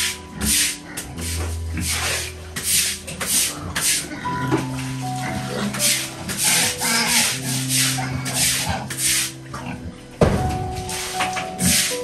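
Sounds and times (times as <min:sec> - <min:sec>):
brush scrubbing wet concrete: 0:00.0 - 0:12.0.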